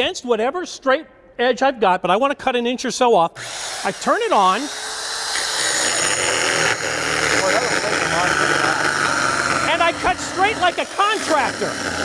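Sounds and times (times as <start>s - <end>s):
circular saw cutting wood: 3.4s - 12.0s.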